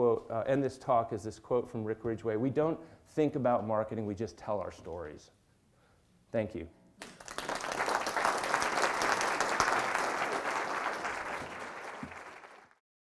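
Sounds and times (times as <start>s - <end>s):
audience applauding: 7.0s - 12.8s.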